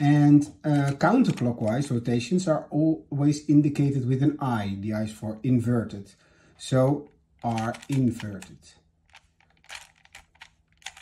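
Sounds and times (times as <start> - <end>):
plastic puzzle cube clicks: 7.4 - 8.5, 9.1 - 11.0.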